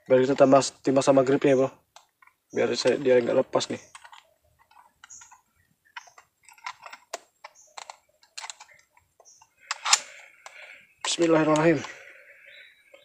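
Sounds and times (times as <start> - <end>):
small clicks and rattles of handling: 1.9 - 12.1.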